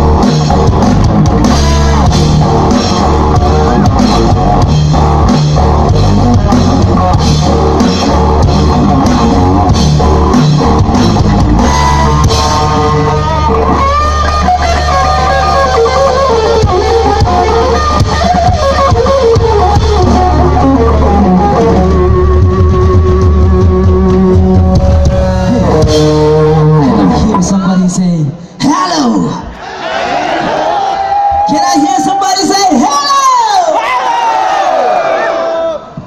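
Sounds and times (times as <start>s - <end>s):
lead electric guitar bending notes: 0.0s - 28.5s
live rock band: 0.0s - 35.2s.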